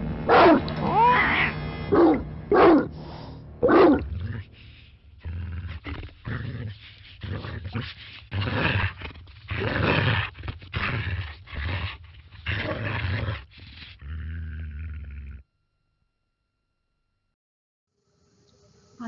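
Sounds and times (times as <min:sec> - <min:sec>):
dog barking and growling: 0:00.0 - 0:03.0, 0:03.6 - 0:15.4.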